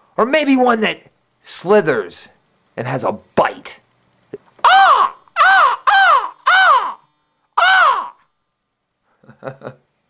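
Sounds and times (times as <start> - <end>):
crow cawing: 4.6 - 7.0, 7.6 - 8.3.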